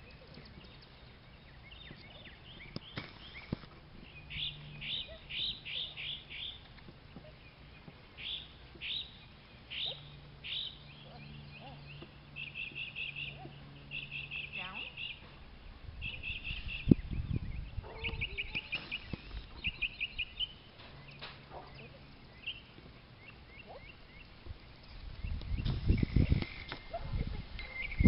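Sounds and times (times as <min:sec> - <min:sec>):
songbird chirping: 0:00.0 - 0:28.0.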